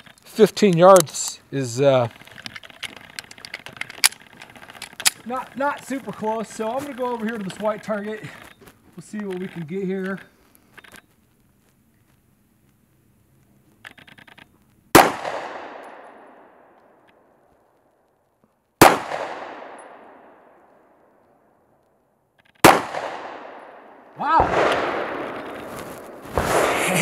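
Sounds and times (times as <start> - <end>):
pistol shots with echo: 14.9 - 16.7, 18.8 - 20.6, 22.6 - 27.0.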